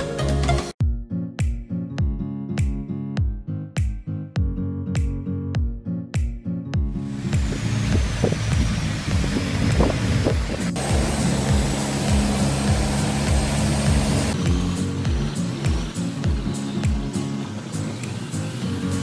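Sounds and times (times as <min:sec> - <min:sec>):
background music with beat: 0:00.0 - 0:19.0
motorboat running: 0:07.0 - 0:19.0
water rushing past: 0:07.2 - 0:14.6.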